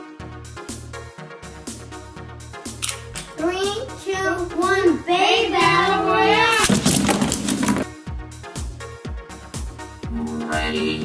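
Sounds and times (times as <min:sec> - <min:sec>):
child shouting: 0:03.4 - 0:06.7.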